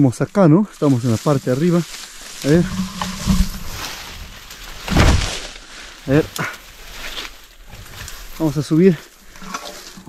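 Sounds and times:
leaves and branches rustling: 0.0s - 10.0s.

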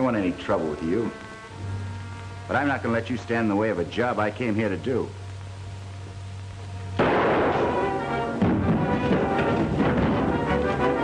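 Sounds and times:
loud film score music: 7.0s - 11.0s.

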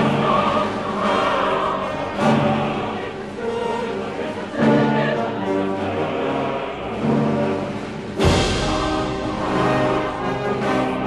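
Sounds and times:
choir and orchestra: 0.0s - 11.0s.

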